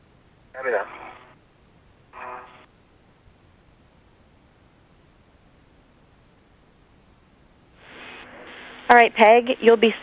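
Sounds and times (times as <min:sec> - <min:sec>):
faint radio hiss: 0:00.0 - 0:10.0.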